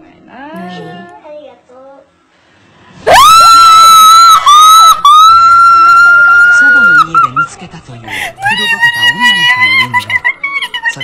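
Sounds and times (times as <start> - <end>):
high-pitched scream: 3.1 - 7.2.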